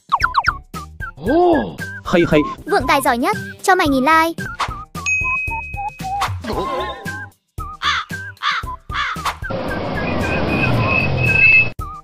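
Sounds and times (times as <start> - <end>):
light background music: 0.2 - 10.3
cartoon crow cawing: 7.8 - 9.3
small truck engine running: 9.5 - 11.7.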